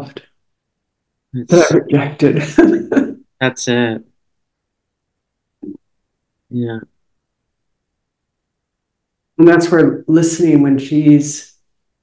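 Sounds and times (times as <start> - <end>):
person murmuring: 1.4 - 3.9, 6.5 - 6.8.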